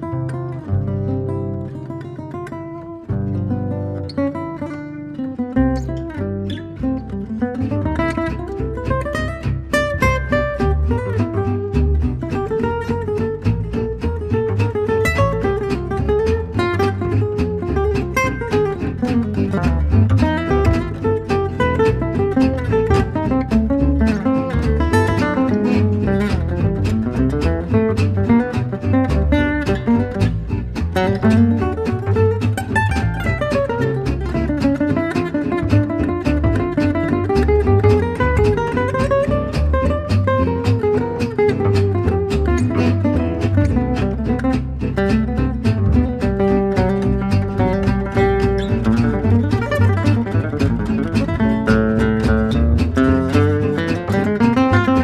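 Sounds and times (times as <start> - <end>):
acoustic guitar melody: 0.0 - 55.0
bass steady pulse: 6.8 - 55.0.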